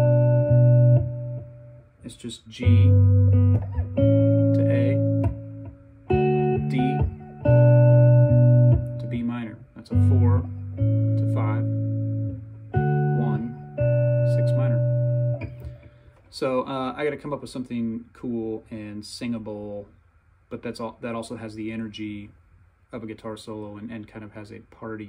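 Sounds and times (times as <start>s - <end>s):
electric guitar chords ringing: 0.0s - 16.1s.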